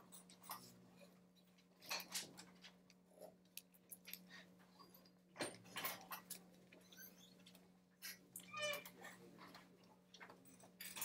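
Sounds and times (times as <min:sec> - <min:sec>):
faint squeak: 0:06.8 - 0:07.5, 0:08.1 - 0:09.2.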